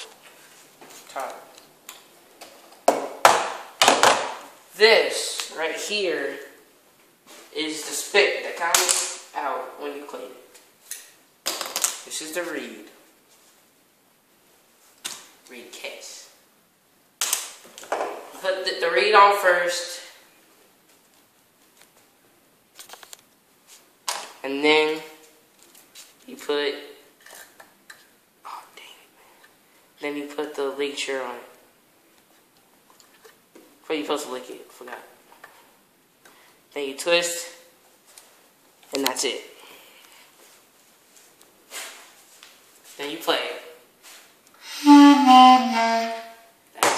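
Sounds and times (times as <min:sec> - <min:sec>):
sharp snap: 0:08.6 - 0:09.3, 0:17.2 - 0:17.6
clarinet held notes: 0:44.6 - 0:46.5.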